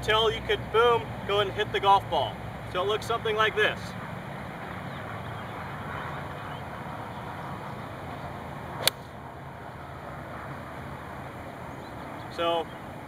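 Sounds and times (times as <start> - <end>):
golf club striking ball: 8.8 - 9.2.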